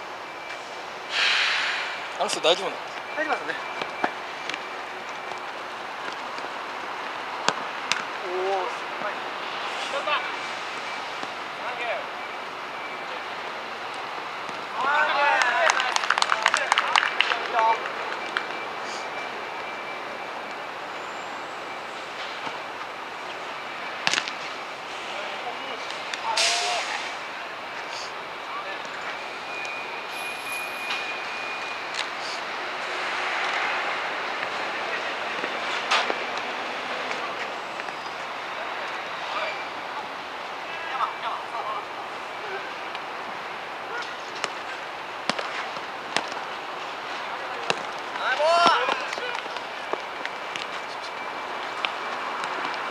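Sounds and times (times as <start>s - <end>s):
open-air background noise: 0.0s - 52.9s
outdoor game background noise: 0.0s - 52.9s.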